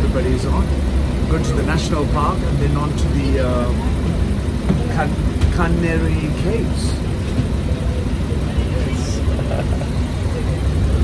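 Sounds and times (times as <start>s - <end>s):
bus engine rumbling: 0.0s - 11.0s
faint passenger voices: 0.0s - 11.0s.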